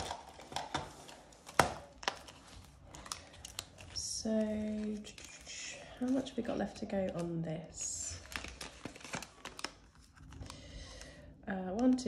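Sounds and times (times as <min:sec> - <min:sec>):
plastic covers rustling: 0:00.0 - 0:12.0.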